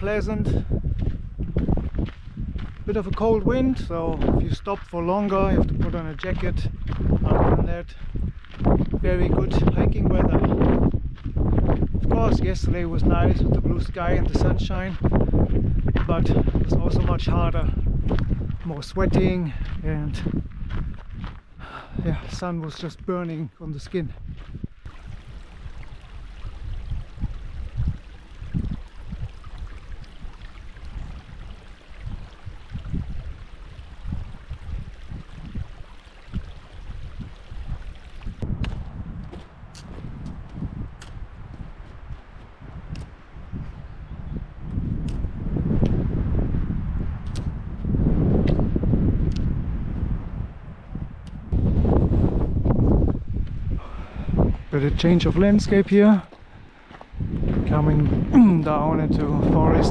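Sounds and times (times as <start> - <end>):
wind buffeting microphone: 0.0 - 59.9
footsteps on gravel: 0.8 - 9.2, 10.4 - 12.0, 14.2 - 35.7, 37.3 - 43.8, 55.8 - 58.7.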